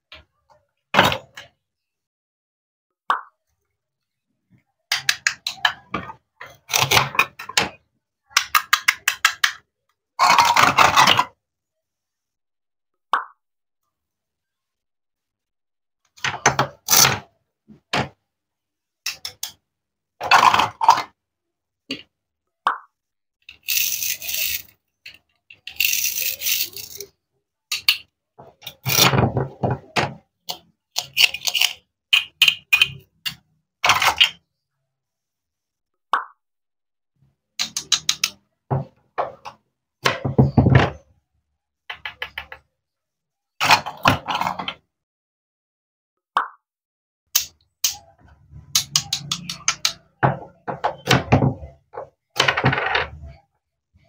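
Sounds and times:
toy pieces clacking on wood: 0:08.4 - 0:09.6, 0:10.2 - 0:11.3, 0:23.5 - 0:27.1, 0:27.7 - 0:29.5, 0:30.5 - 0:34.4, 0:37.6 - 0:38.4, 0:47.4 - 0:48.0, 0:48.7 - 0:53.3
toy knife scraping: 0:23.5 - 0:24.7, 0:25.6 - 0:27.1, 0:30.9 - 0:31.8.

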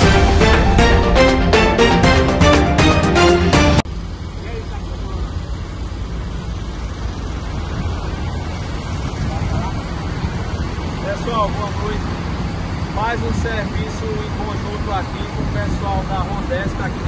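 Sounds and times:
upbeat electronic music: 0:00.0 - 0:03.8
vehicles rumbling outdoors: 0:00.0 - 0:17.0.

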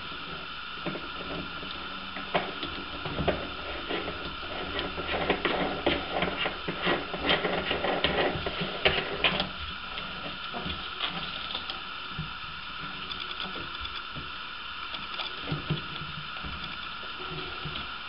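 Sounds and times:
faint steady hum: 0:00.0 - 0:18.0
clicking and scraping on ceramic: 0:00.8 - 0:11.8, 0:13.0 - 0:14.1, 0:14.8 - 0:17.9.

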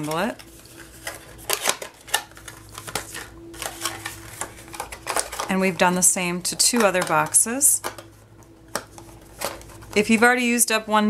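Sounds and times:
cardstock crackling and tapping: 0:00.0 - 0:10.3.

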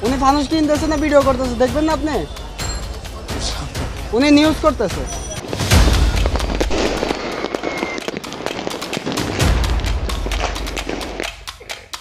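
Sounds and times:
deep firework booms: 0:05.4 - 0:11.3
fireworks cracking and popping: 0:05.4 - 0:12.0.

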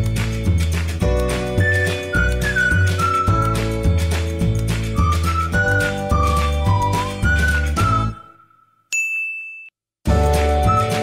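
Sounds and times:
background music: 0:00.0 - 0:08.6, 0:10.1 - 0:11.0
bright ding sound effect: 0:08.9 - 0:09.8.

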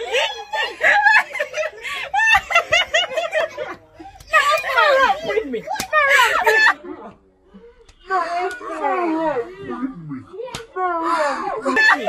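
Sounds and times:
woman laughing loudly: 0:00.0 - 0:03.7
excited voices: 0:00.0 - 0:12.0.

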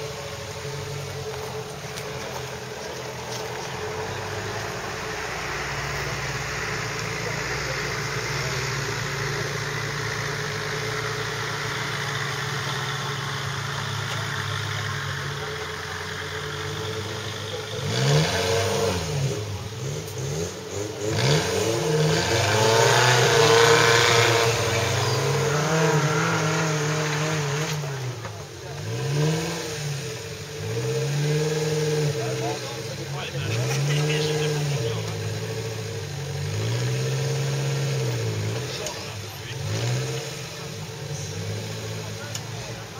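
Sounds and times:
truck engine revving: 0:00.0 - 0:42.9.

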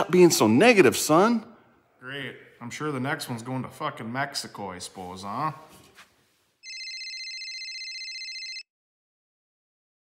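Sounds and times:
telephone ringing: 0:06.6 - 0:08.7.

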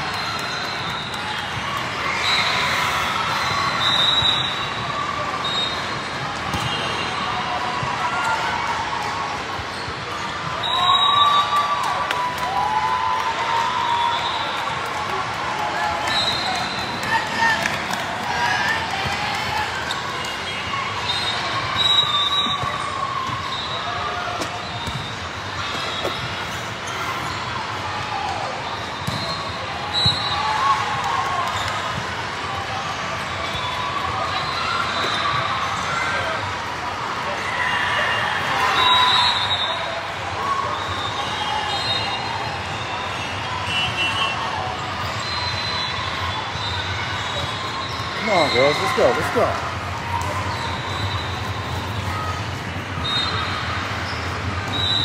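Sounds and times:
chatter and shouts: 0:00.0 - 0:55.0
volleyball hits and bounces: 0:06.4 - 0:07.0, 0:24.3 - 0:26.4, 0:29.0 - 0:30.3.

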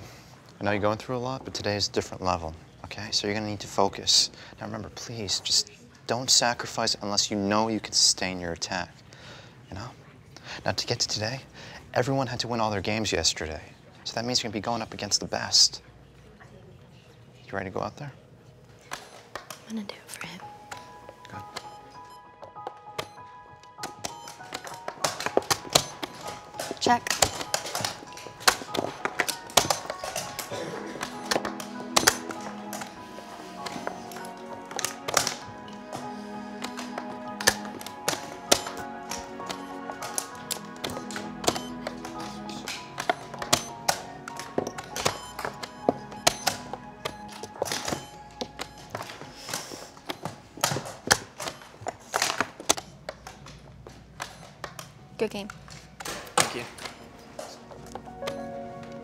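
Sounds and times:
background film music: 0:18.2 - 0:59.0.

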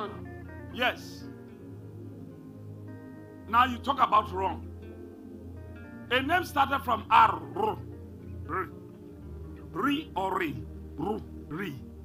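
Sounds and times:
person speaking: 0:00.0 - 0:01.3, 0:03.5 - 0:04.6, 0:06.1 - 0:07.9, 0:08.5 - 0:08.8, 0:09.7 - 0:11.8
soft low sustained music: 0:00.0 - 0:12.0.

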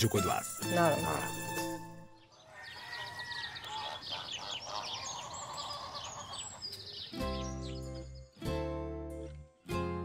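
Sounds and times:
birds chirping and twittering: 0:00.0 - 0:08.7
long rising bird call: 0:02.3 - 0:07.6.

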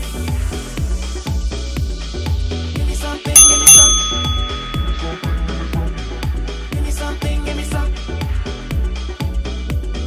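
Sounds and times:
timer bell chime: 0:03.4 - 0:06.4.

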